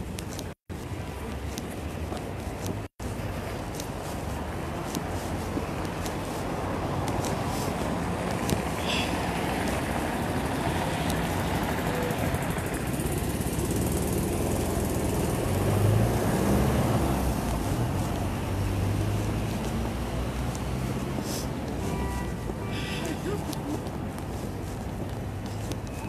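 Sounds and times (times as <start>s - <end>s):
city street traffic: 0.0s - 26.0s
vehicle engine hum: 0.0s - 26.0s.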